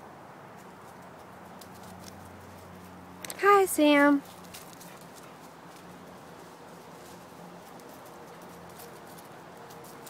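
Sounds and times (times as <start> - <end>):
footsteps rustling dry leaves: 4.2 - 10.0.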